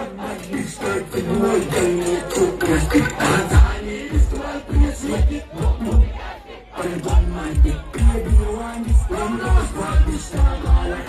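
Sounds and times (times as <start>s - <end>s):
crowd shouting: 0.0s - 11.0s
dancehall music with heavy bass: 0.0s - 11.0s.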